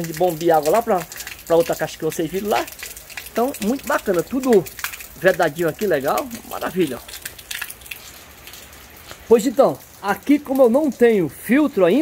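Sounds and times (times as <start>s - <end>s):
light rain hiss: 0.0s - 12.0s
raindrop taps: 0.0s - 12.0s.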